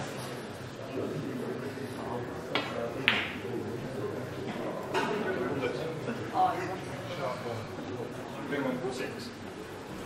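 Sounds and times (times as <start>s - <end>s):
snooker cue and balls clicking: 2.5s - 3.6s.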